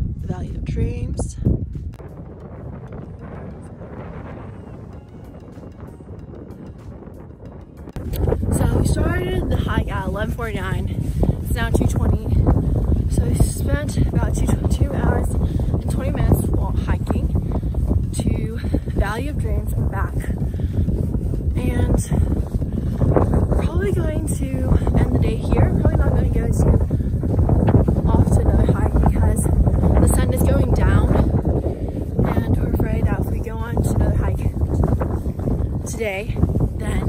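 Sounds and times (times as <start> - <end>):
wind on microphone: 0.0 - 37.0
woman talking: 0.2 - 1.5, 8.5 - 17.4, 18.1 - 20.4, 21.5 - 22.4, 23.6 - 26.9, 28.0 - 31.4, 32.2 - 34.8, 35.8 - 37.0.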